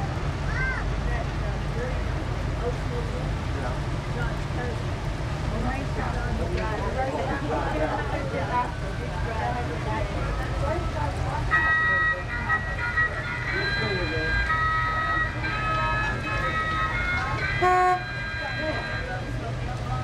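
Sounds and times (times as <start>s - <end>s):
faint voices: 0.0s - 20.0s
high held notes: 11.5s - 19.5s
vehicle horn blast: 16.6s - 19.2s.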